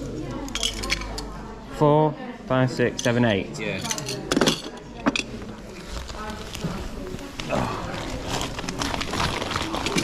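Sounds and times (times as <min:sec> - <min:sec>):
plastic bag rustling: 0:05.4 - 0:10.0.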